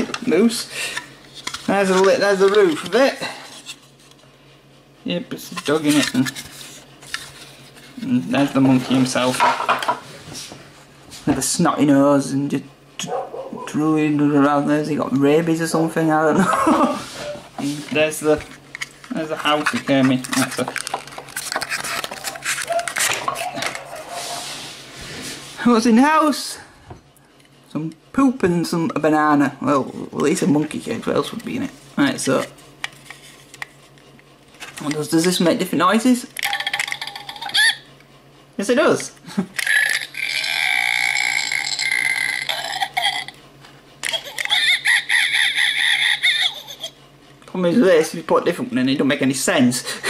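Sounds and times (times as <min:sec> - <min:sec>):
plastic toy pieces clicking: 0:36.4 - 0:37.6
toy playing gross-out sound effects: 0:36.4 - 0:37.9, 0:39.6 - 0:43.4, 0:44.0 - 0:46.9.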